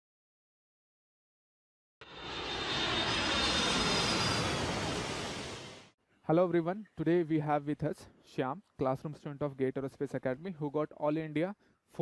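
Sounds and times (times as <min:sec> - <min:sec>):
jet airplane flyby: 0:02.0 - 0:06.0.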